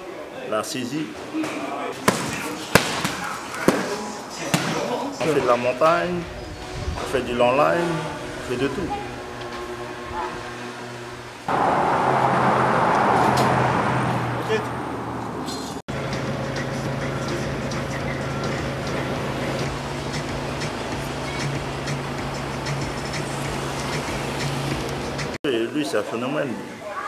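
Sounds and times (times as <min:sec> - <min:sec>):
traffic noise: 0:01.9 - 0:25.4
vehicle passing close by: 0:06.4 - 0:25.4
low engine hum: 0:07.9 - 0:25.4.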